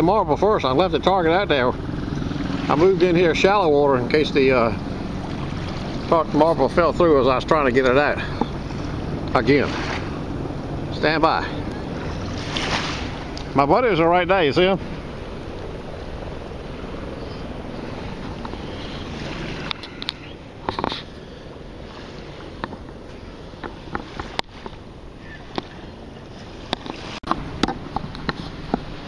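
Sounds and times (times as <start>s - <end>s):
water wading: 0.0s - 29.0s
wind: 0.0s - 29.0s
small splashes: 2.1s - 13.6s, 17.7s - 29.0s.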